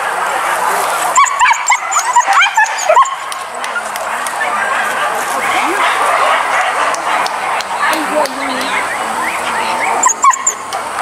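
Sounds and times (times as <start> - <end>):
people talking: 0.0 - 11.0
dogs yelping and barking: 0.1 - 11.0.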